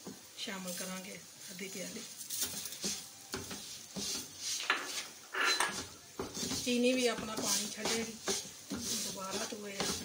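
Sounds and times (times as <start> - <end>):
wooden spatula scraping a pan: 0.0 - 10.0.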